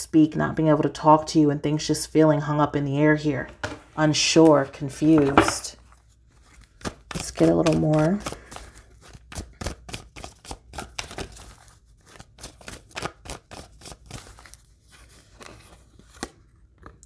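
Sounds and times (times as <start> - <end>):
cards being shuffled: 4.4 - 17.0.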